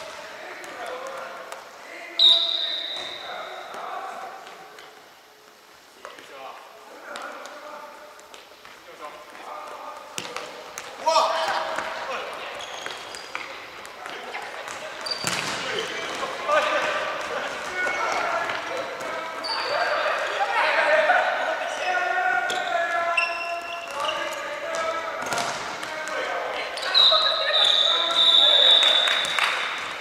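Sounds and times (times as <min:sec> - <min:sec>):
sneakers squeaking on wooden floor: 0:02.2 - 0:03.3, 0:11.9 - 0:16.1, 0:19.0 - 0:20.2, 0:22.5 - 0:25.5, 0:26.6 - 0:29.4.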